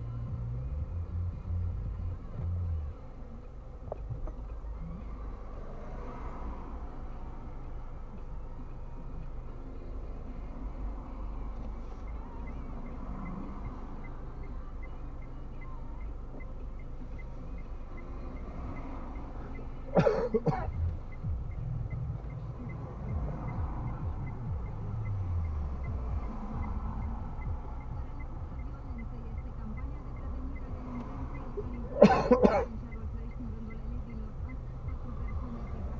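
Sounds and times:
car idling hum: 0:00.0 - 0:35.9
faint regular ticking: 0:00.4 - 0:05.4, 0:06.0 - 0:32.1
person coughing: 0:19.9 - 0:20.7, 0:31.9 - 0:32.7.

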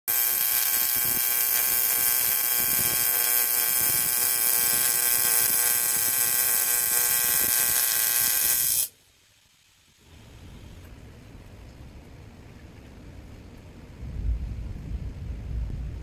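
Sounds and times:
welding arc buzzing: 0:00.1 - 0:08.9.

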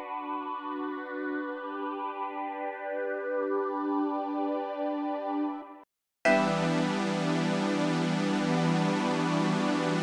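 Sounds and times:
synth strings sustained chord: 0:06.3 - 0:10.0.

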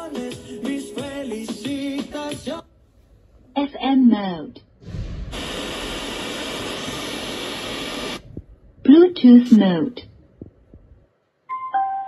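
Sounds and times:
speaker static hiss: 0:05.3 - 0:10.1.

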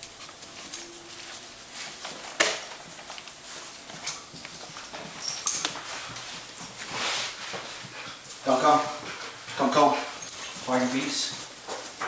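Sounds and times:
dog sniffing: 0:05.8 - 0:08.2.

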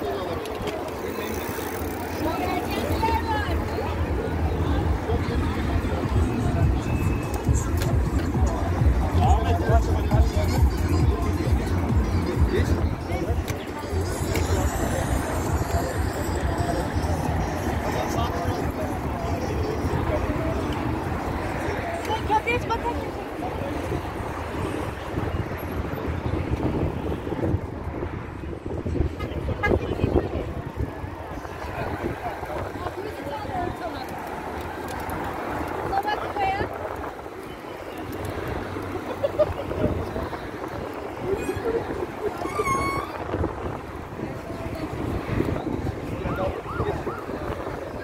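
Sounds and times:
riders' voices chattering: 0:00.0 - 0:48.0.

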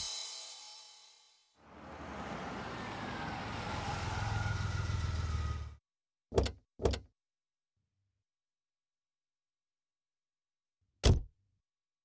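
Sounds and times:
car engine driving up: 0:01.6 - 0:05.8.

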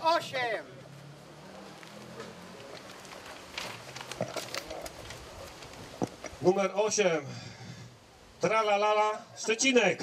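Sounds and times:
short clicks and rustles: 0:01.8 - 0:06.4.

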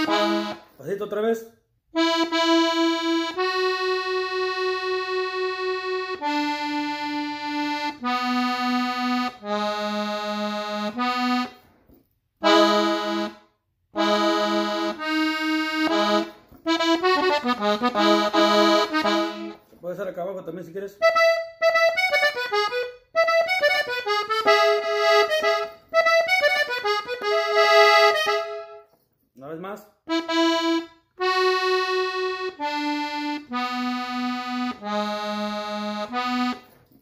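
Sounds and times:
button accordion melody: 0:00.0 - 0:01.2, 0:01.9 - 0:11.8, 0:12.4 - 0:19.8, 0:20.6 - 0:29.0, 0:30.0 - 0:37.0.

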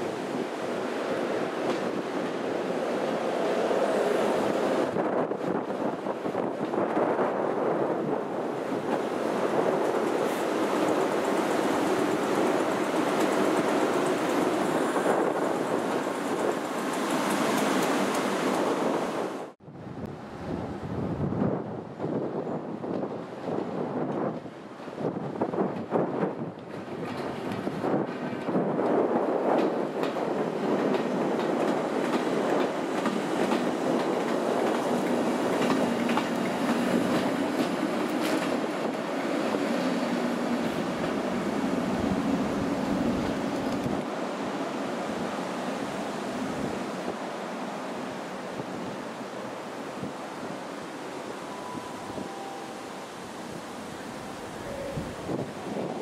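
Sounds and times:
train wheels running on rails: 0:00.0 - 0:19.6, 0:21.4 - 0:56.0.

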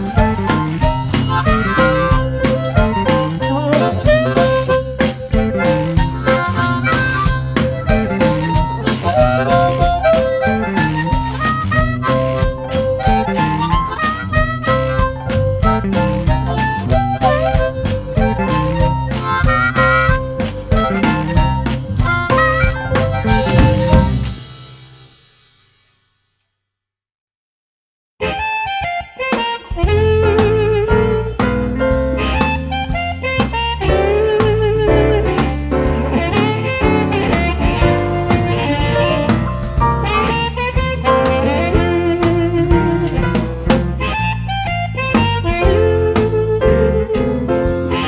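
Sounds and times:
blues harmonica solo: 0:00.0 - 0:24.9, 0:28.2 - 0:48.0
backing band: 0:00.0 - 0:25.7, 0:28.2 - 0:48.0.

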